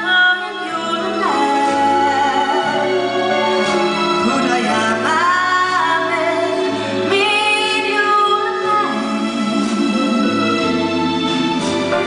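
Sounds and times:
woman singing a ballad: 0.0s - 3.1s, 4.5s - 10.7s
live band playing: 0.0s - 12.0s.

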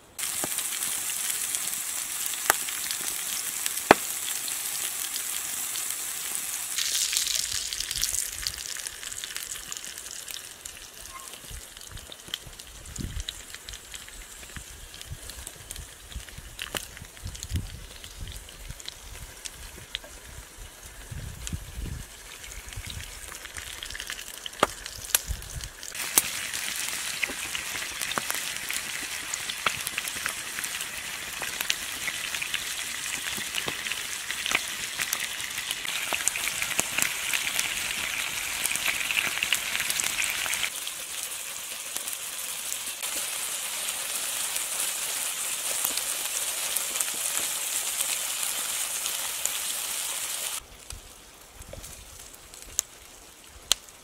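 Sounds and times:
meat sizzling with sharp pops: 0.0s - 54.0s.

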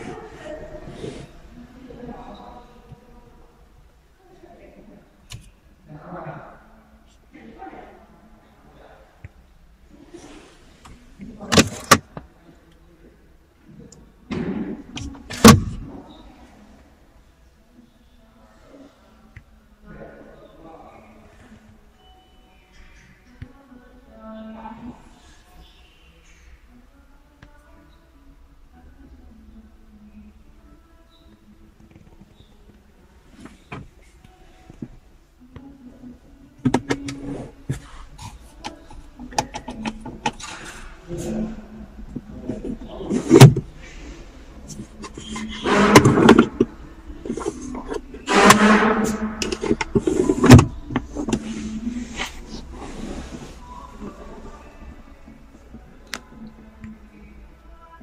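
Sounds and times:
gear lever clicks and clunks: 11.5s - 12.1s, 45.0s - 51.4s.

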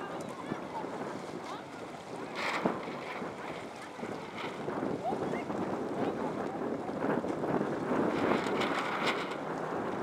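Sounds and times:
small waves lapping: 0.0s - 10.0s
wind buffeting microphone: 0.0s - 10.0s.

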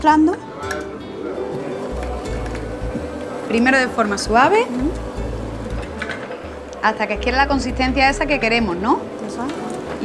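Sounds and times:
background music: 0.0s - 10.0s
blender motor hum: 1.3s - 10.0s.

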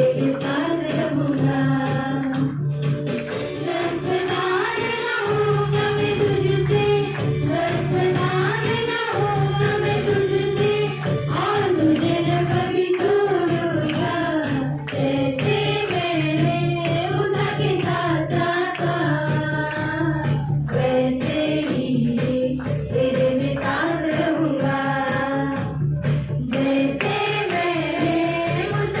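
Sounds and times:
women singing through microphones: 0.0s - 2.7s, 3.4s - 25.8s, 26.4s - 29.0s
percussion beat: 0.0s - 29.0s.

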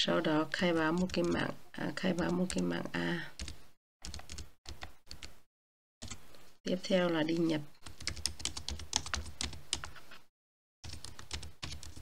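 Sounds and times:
computer keyboard typing: 0.6s - 1.5s, 3.4s - 5.4s, 7.3s - 9.9s, 10.8s - 12.0s.

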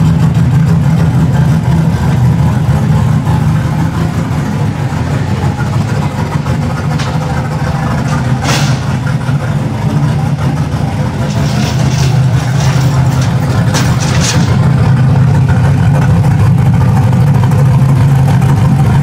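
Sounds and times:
vehicle engine idling: 0.0s - 19.0s.

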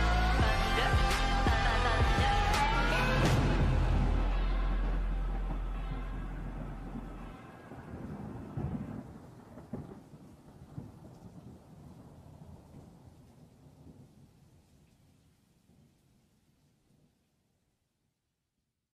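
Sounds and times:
song held low note: 0.0s - 8.3s
thunder rumbling and cracking: 0.0s - 14.4s.

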